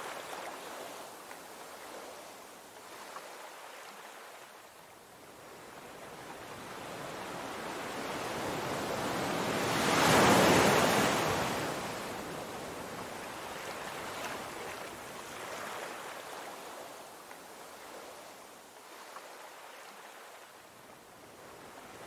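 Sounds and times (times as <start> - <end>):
ocean surf breaking on rocks: 8.6 - 12.2.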